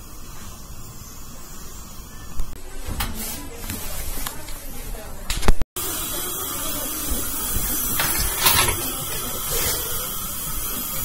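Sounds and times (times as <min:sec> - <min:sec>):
steady hiss: 0:00.0 - 0:02.6, 0:08.8 - 0:11.0.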